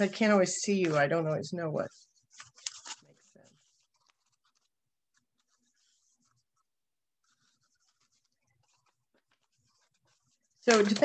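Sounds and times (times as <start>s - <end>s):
paper crackling and rustling: 0.7s - 11.0s.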